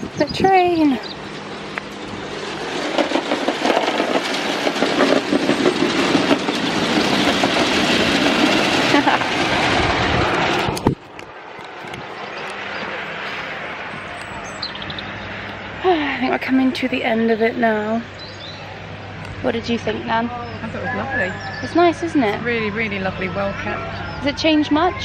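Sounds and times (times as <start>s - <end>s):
outdoor background noise: 0.0s - 25.0s
model train clattering on track: 2.6s - 9.6s.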